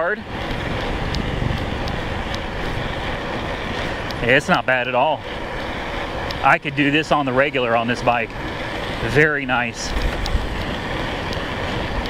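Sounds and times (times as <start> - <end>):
wind rushing: 0.0 - 6.4
tyre rumble on asphalt: 0.0 - 12.0
faint ticks: 0.4 - 2.8, 3.7 - 4.2, 9.8 - 12.0.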